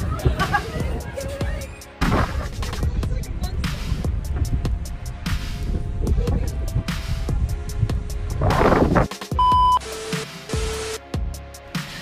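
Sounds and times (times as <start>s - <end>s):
background music with a beat: 0.0s - 12.0s
high-pitched test-tone beep: 9.4s - 9.8s.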